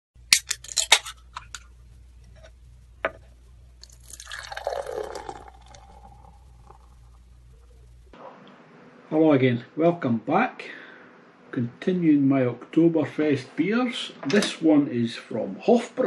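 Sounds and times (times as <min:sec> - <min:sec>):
faint steady low hum: 0:00.2 - 0:16.0
liquid pouring: 0:03.8 - 0:07.2.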